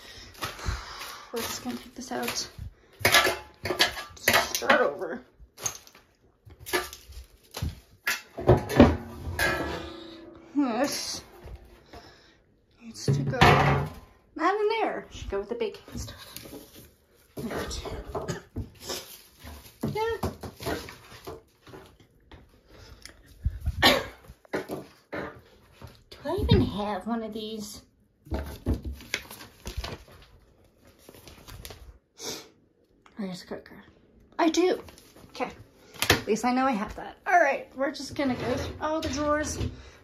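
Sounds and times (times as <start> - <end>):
household items clattering: 0.0 - 14.2, 15.3 - 22.1, 37.4 - 40.0.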